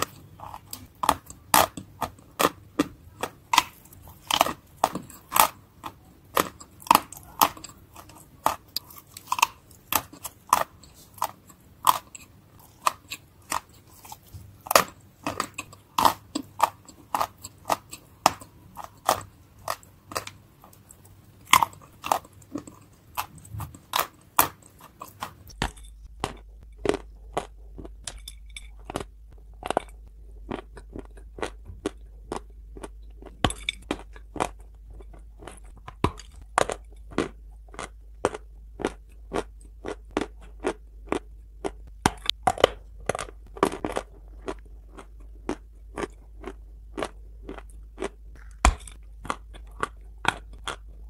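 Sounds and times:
biting and chewing clay crunches: 0.0 - 51.0.

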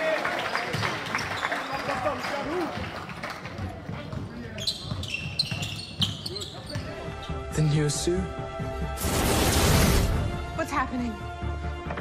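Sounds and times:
sneaker squeaks: 4.0 - 7.0.

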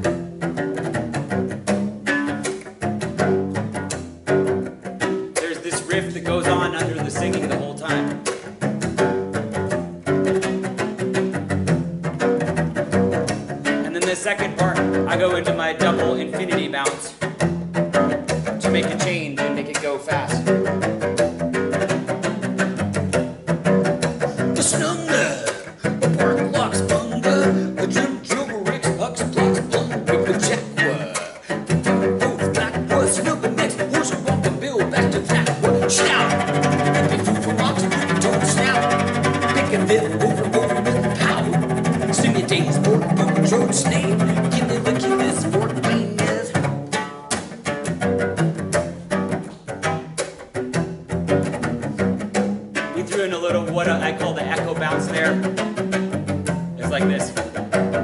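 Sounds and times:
cello bouncing bow strokes: 0.0 - 58.0.

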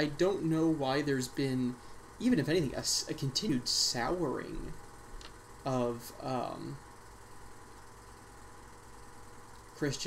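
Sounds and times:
background hiss: 0.0 - 10.0
faint low hum: 0.0 - 10.0.

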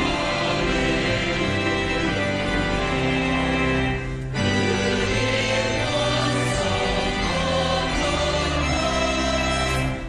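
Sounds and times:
choir singing: 0.0 - 10.0.

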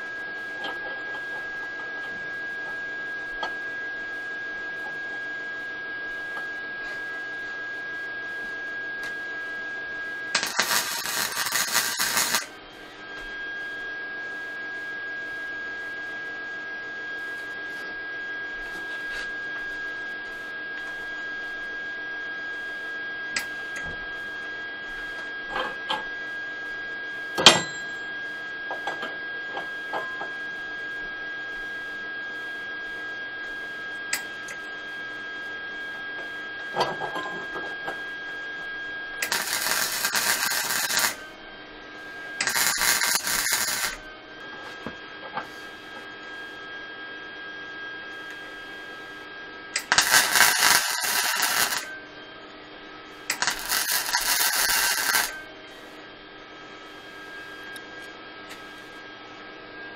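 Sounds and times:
steady hum: 10.2 - 12.7, 39.2 - 41.4, 42.3 - 45.4, 49.8 - 52.1, 53.3 - 55.5
welding arc: 10.3 - 12.5, 39.2 - 41.2, 42.4 - 44.0, 49.8 - 51.9, 53.3 - 55.4.

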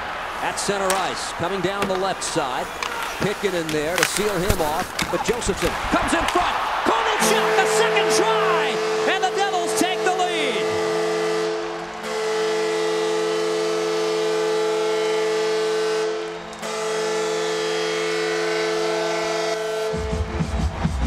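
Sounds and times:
crowd cheering: 0.0 - 21.0
goal horn blasts: 7.1 - 20.5.

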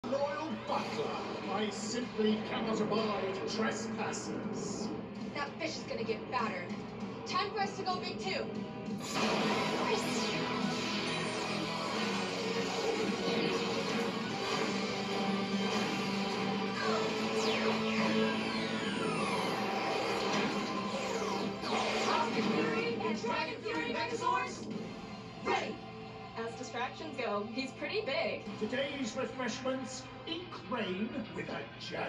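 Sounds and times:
dramatic theme music on television: 0.0 - 32.0
effects sweeping in pitch: 9.0 - 22.7.

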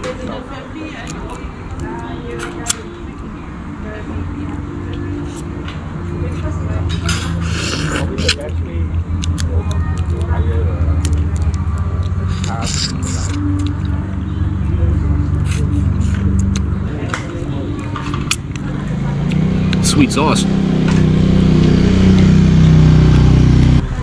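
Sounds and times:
voices: 0.0 - 24.0
wet slurping: 7.0 - 8.4, 12.0 - 13.9
crab shell cracking and clicking: 9.2 - 10.3.

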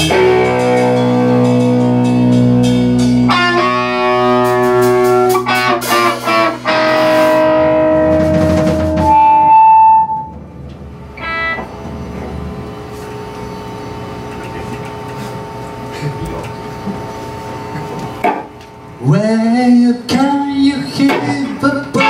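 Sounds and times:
live rock band: 0.0 - 13.3, 19.7 - 22.0
high held guitar note: 0.0 - 19.2, 21.0 - 22.0
short pitched sound: 3.3 - 17.8.

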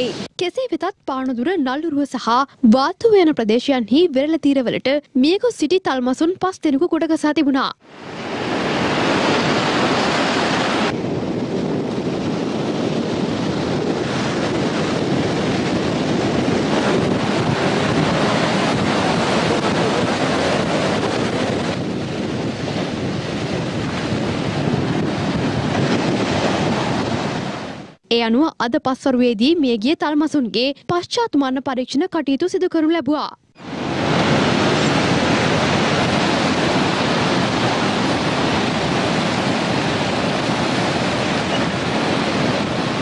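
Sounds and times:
sea surf breaking on a beach: 0.0 - 0.3, 7.8 - 28.0, 33.6 - 43.0
wind buffeting microphone: 7.8 - 28.0, 33.6 - 43.0.

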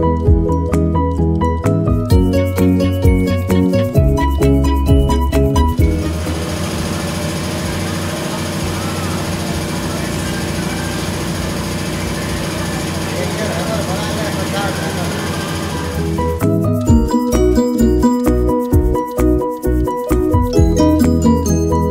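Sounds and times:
background music: 0.0 - 21.9
fast mechanical clatter: 5.7 - 16.6
voices chattering: 7.5 - 16.2.

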